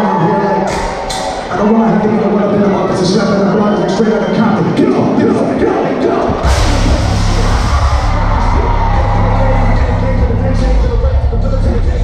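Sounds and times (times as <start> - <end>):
crowd whooping and yelling: 0.0 - 12.0
loud live rock music: 6.2 - 12.0.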